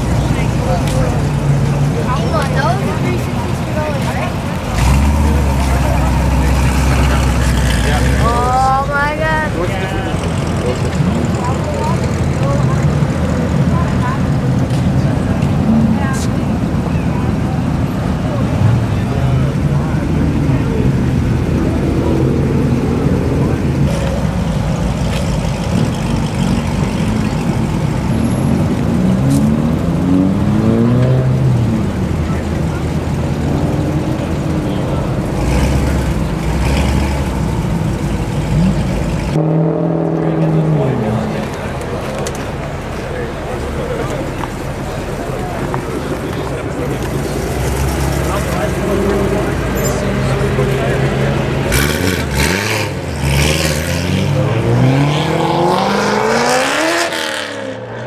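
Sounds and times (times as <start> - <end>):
car engine revving: 0.0 - 58.0
crowd chatter: 0.0 - 58.0.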